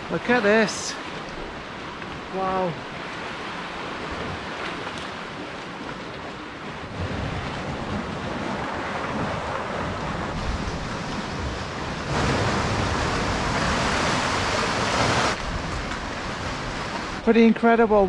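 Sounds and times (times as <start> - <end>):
sea surf surging through rocks: 0.0 - 18.0
wind buffeting microphone: 0.0 - 18.0.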